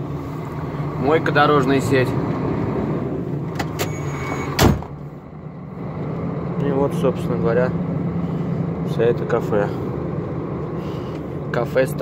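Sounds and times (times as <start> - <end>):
diesel engine idling: 0.0 - 3.7, 4.8 - 12.0
loud thump: 4.6 - 5.0.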